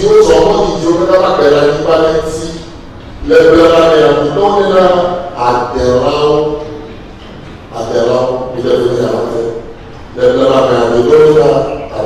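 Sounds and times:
man speaking into a microphone: 0.0 - 7.1, 7.7 - 12.0.

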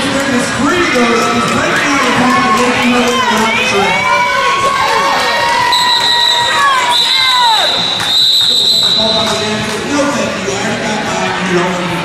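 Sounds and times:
crowd shouting and cheering: 0.0 - 12.0
long high whistle: 5.7 - 9.3.

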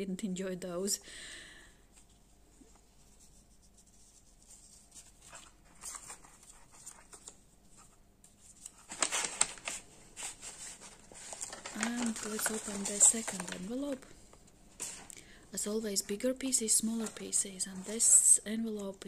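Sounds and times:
paper rustling: 2.0 - 14.0, 16.6 - 18.3
paper envelope crinkling: 3.2 - 14.1, 16.6 - 18.2.

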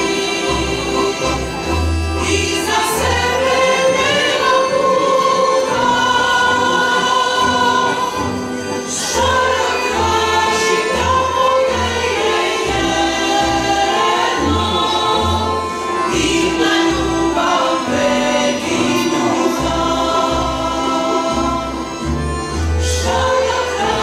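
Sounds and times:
small string band: 0.0 - 24.0
women's choir singing: 0.0 - 24.0.

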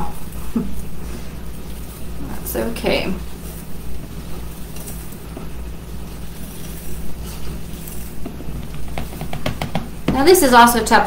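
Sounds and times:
coffee grounds rustling: 0.0 - 10.9
steady low hum: 0.0 - 11.0.

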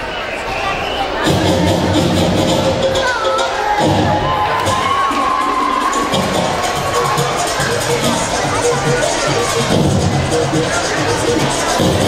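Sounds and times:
crowd cheering: 0.0 - 12.0
dance music with bass beat: 1.2 - 12.0
children shouting: 2.8 - 12.0.

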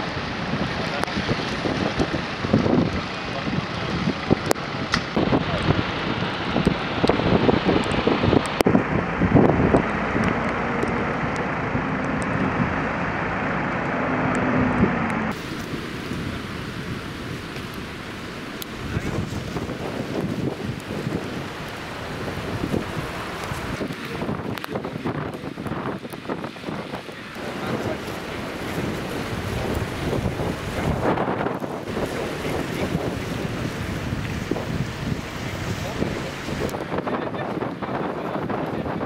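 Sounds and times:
wind gusting across microphone: 0.0 - 39.0.

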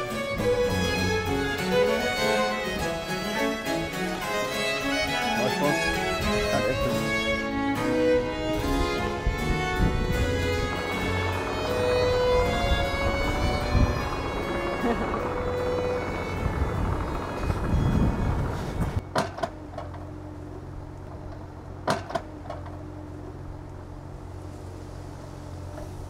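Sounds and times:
classical string music: 0.0 - 19.0
excavator diesel engine running: 0.0 - 26.0.

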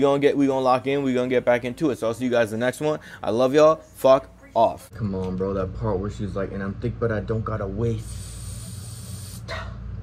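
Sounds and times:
low hum: 3.8 - 10.0.

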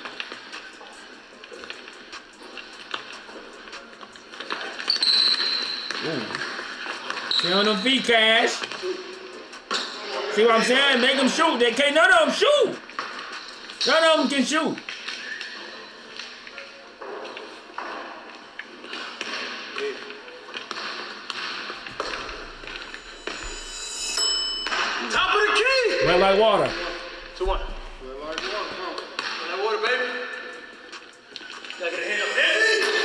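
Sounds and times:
players' voices: 6.0 - 13.0, 25.0 - 31.1.

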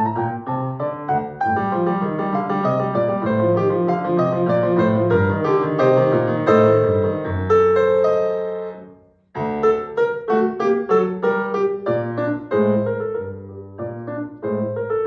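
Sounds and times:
grand piano playing: 0.0 - 15.0.

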